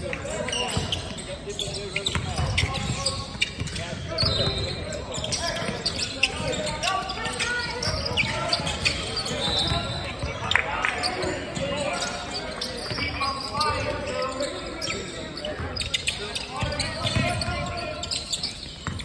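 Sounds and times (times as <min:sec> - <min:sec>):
indistinct voices in a gym: 0:00.0 - 0:19.0.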